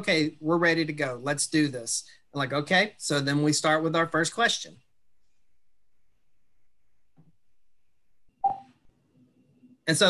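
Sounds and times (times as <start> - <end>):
man speaking: 0.0 - 4.8
short electronic blip: 8.4 - 8.7.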